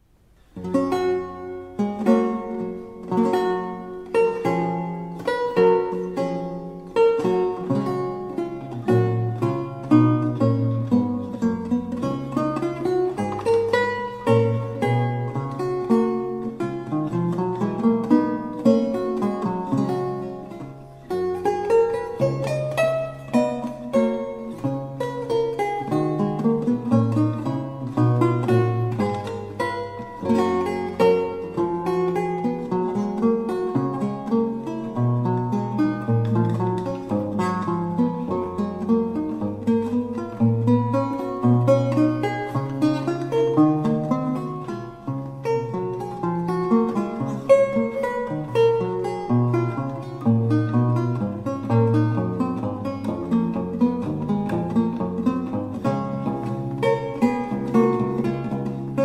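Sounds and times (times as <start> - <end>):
solo lute music: 0.0 - 59.0.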